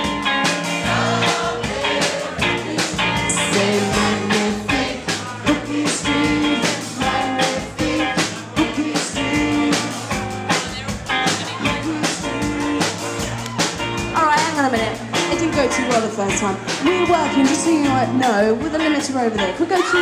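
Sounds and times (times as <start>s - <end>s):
drum kit beat: 0.0s - 20.0s
live rock band playing: 0.0s - 20.0s.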